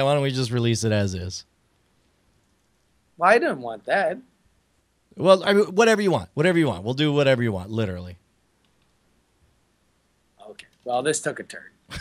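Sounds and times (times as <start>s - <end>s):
man speaking: 0.0s - 1.4s, 3.2s - 4.2s, 5.2s - 8.2s, 10.4s - 12.0s
faint clicks: 2.0s - 3.0s, 8.6s - 9.0s, 10.4s - 10.9s.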